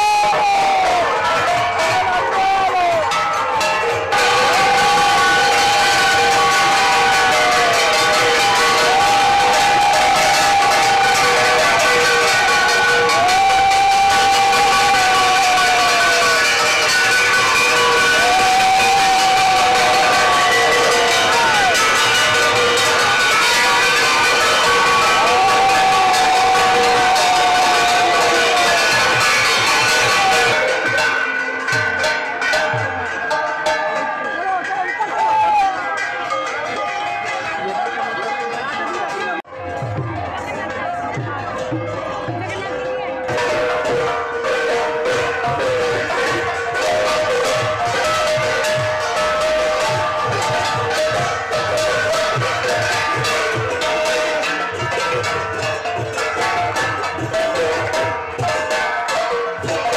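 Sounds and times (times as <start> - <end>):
crowd cheering: 0.0 - 59.9
brass gongs and cymbals beaten: 0.1 - 39.2, 39.8 - 59.9.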